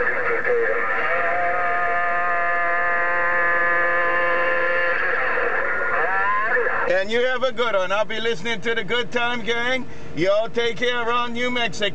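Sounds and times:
held tone over radio speaker: 0:00.0 - 0:06.9.

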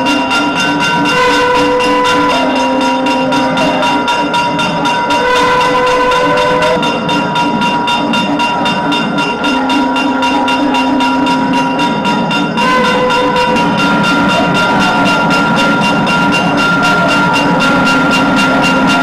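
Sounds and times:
drone: 0:00.0 - 0:19.0
drum strokes: 0:00.0 - 0:19.0
nadaswaram playing long notes: 0:00.0 - 0:19.0.

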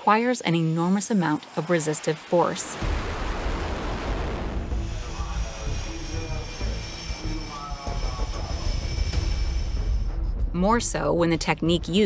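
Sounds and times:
jet engine whine: 0:00.4 - 0:09.9
deep rumble: 0:02.7 - 0:12.0.

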